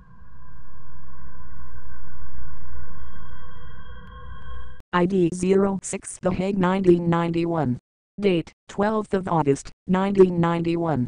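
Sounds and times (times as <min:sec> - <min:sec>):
low rumble: 0:00.0 - 0:04.8.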